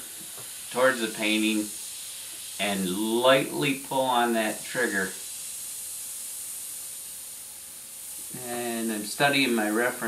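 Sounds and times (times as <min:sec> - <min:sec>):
airbrush hissing: 0:00.0 - 0:10.0.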